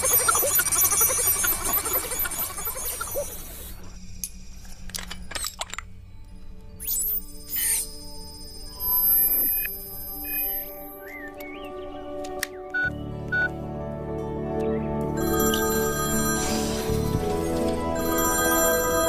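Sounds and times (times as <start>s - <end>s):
electronic sci-fi score: 0.0s - 12.1s, 14.6s - 19.0s.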